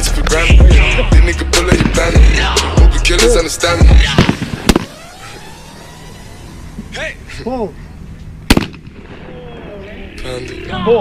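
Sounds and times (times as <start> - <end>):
backing music: 0.0 - 7.3
open outdoor air: 0.0 - 11.0
shotgun firing with echo: 1.7 - 2.3, 4.0 - 5.1, 8.5 - 9.3.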